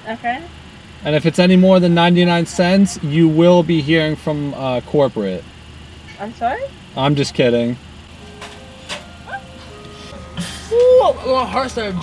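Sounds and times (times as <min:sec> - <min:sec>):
low steady hum: 0:00.0 - 0:12.0
faint eerie background music: 0:08.2 - 0:12.0.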